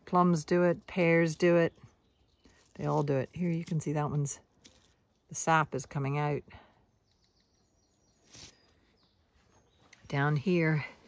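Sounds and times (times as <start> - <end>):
faint bird chirps: 6.5 - 11.0.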